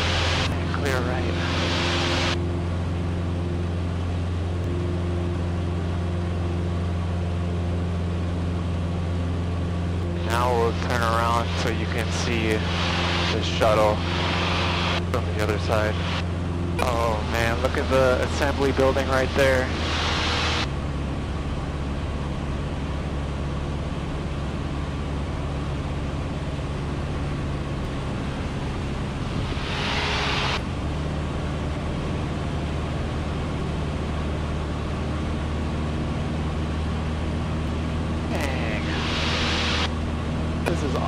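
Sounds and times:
aircraft engine droning: 0.0s - 41.0s.

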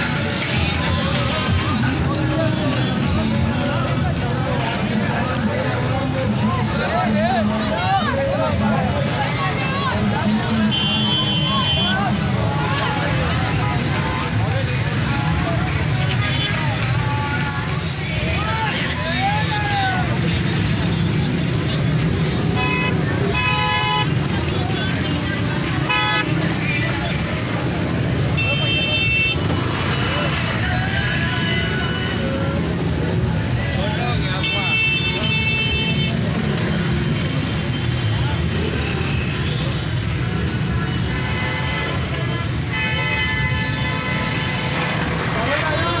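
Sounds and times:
car and motorcycle engines: 0.0s - 42.7s, 43.4s - 46.0s
horns honking: 10.4s - 12.3s, 20.1s - 26.9s, 28.0s - 30.3s, 34.0s - 46.0s
crowd shouting: 15.8s - 21.0s.

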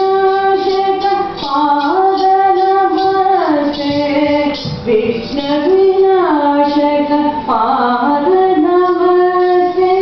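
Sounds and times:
woman singing classical melody: 0.0s - 10.0s.

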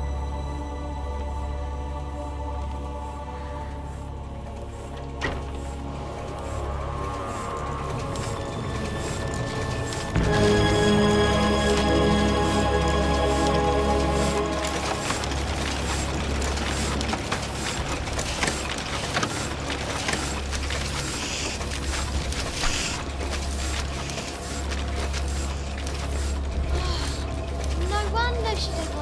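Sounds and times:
low mechanical drone: 0.0s - 29.0s
printing press clattering: 4.2s - 29.0s.

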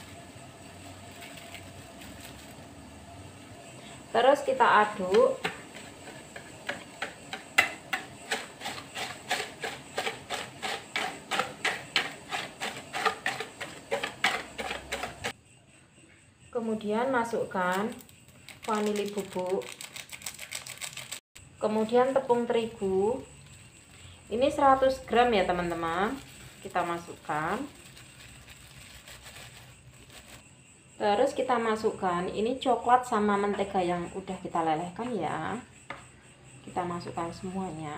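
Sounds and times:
plastic bag rustling: 0.0s - 2.8s, 25.6s - 30.4s.

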